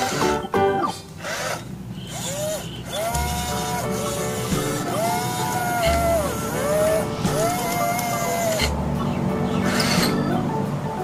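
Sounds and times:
toy excavator motor whining: 0.0s - 0.4s, 1.1s - 8.8s, 9.6s - 10.2s
background music: 0.0s - 1.2s, 3.0s - 11.0s.

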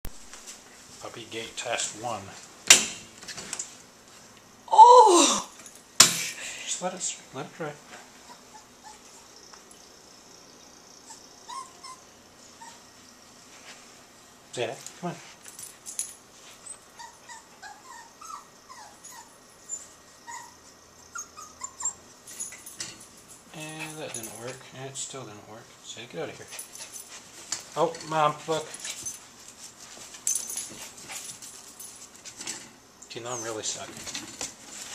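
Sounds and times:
small dog whimpering: 8.2s - 9.3s, 11.0s - 12.8s, 16.9s - 22.0s, 33.3s - 33.7s.

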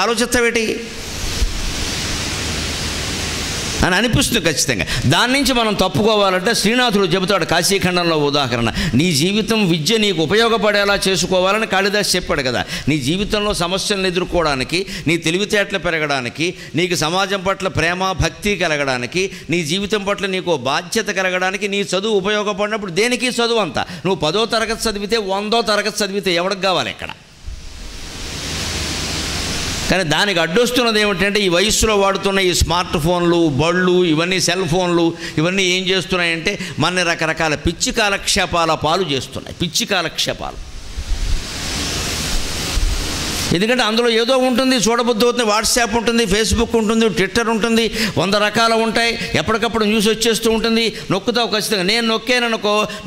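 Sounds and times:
background hiss: 0.0s - 53.0s
steady rushing hiss: 0.5s - 5.7s, 27.2s - 31.6s, 35.0s - 44.1s.

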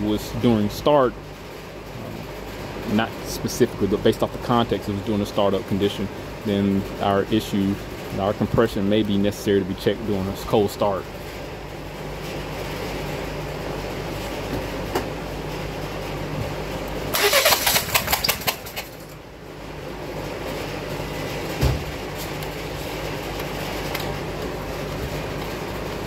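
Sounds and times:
engine rattling burst: 17.0s - 19.2s.

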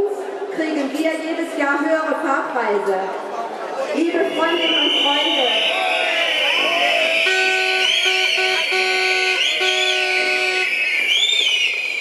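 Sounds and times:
steady shrill din: 4.1s - 12.0s
whistles gliding up and down: 4.3s - 12.0s
horn sounding held notes: 7.1s - 10.8s.

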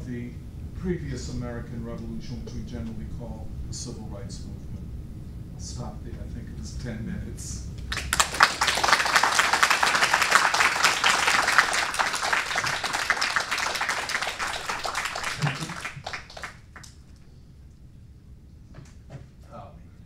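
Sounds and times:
audience applauding: 7.9s - 17.0s.

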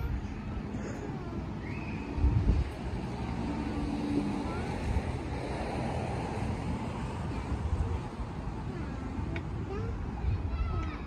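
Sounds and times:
wind buffeting microphone: 1.4s - 11.0s.

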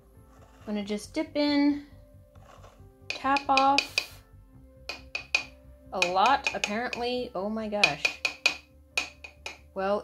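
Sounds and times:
soft background music: 0.0s - 10.0s
makeup brush tapping container: 3.1s - 4.2s, 4.9s - 7.2s, 7.8s - 9.6s.

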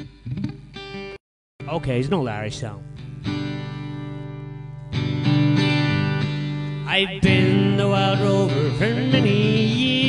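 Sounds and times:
acoustic guitar strumming chords: 0.0s - 10.0s.

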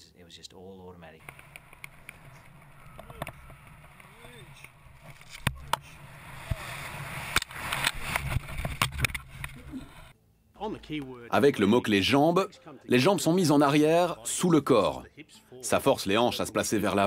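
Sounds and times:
sharp clicks: 1.2s - 5.9s
wind rushing past: 1.2s - 10.1s.

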